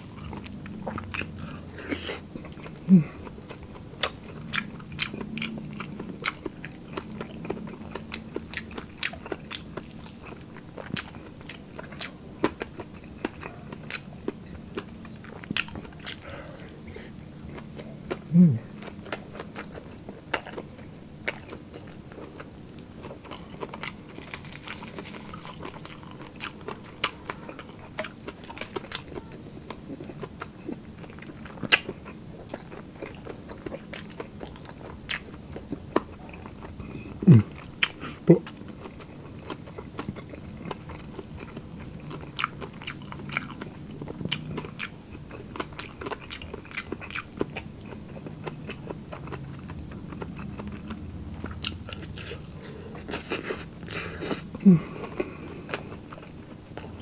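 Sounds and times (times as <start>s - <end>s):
chewing crispy fried pork: 0.0s - 57.0s
crackling breaking between teeth: 23.4s - 29.0s.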